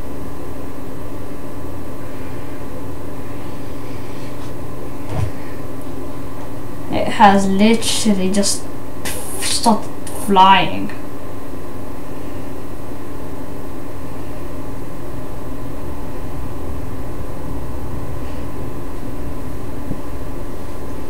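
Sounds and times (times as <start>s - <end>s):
steady hum with hiss: 0.0s - 21.0s.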